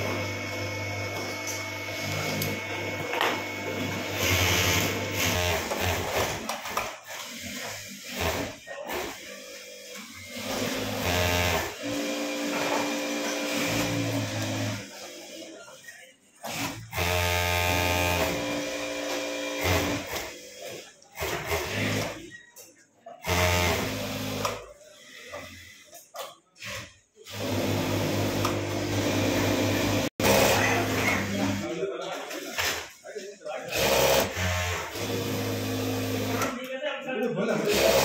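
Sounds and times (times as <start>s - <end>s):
sewing machine running: 0.0s - 15.5s, 16.4s - 22.2s, 23.2s - 25.8s, 26.6s - 31.7s, 33.7s - 36.5s, 37.6s - 38.0s.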